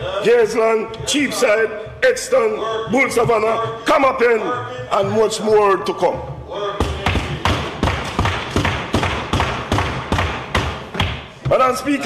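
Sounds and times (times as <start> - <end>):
hubbub of voices: 0.0 - 7.8
people banging desks: 6.8 - 12.0.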